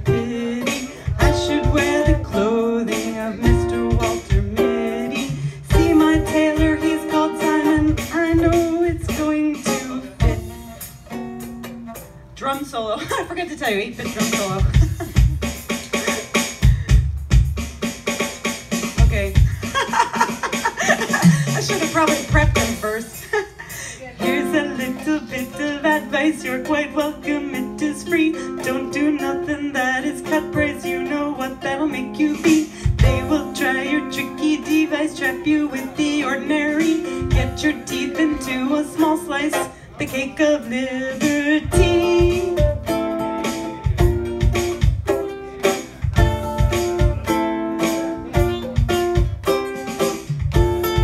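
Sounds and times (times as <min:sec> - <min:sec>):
ukulele strumming: 0:00.0 - 0:12.6, 0:19.2 - 0:23.0, 0:24.2 - 0:51.0
drum kit solo: 0:00.0 - 0:12.8, 0:13.7 - 0:40.3, 0:41.1 - 0:51.0.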